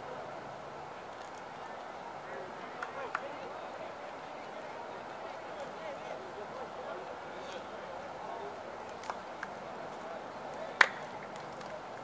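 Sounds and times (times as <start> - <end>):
distant chatter: 0.0 - 12.0.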